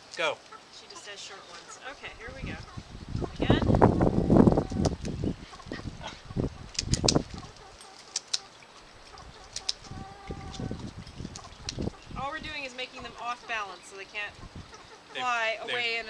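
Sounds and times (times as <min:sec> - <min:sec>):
hen clucking: 0:00.5 - 0:16.0
scissors snipping: 0:06.7 - 0:08.5, 0:09.5 - 0:09.9.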